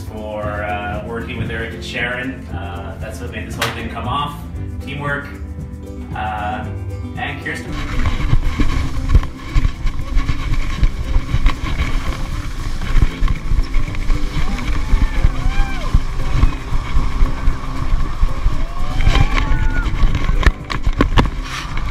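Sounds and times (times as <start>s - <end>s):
wind buffeting microphone: 7.7s - 21.9s
skis hissing on snow: 21.4s - 21.9s.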